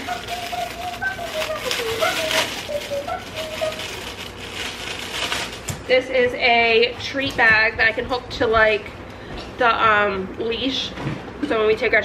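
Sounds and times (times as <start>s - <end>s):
person humming faintly: 0.0s - 3.9s
plastic packaging crinkling: 0.0s - 5.9s.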